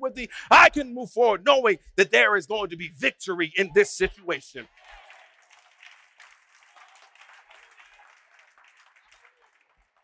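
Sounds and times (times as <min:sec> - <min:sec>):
faint applause: 0:03.8 - 0:10.0.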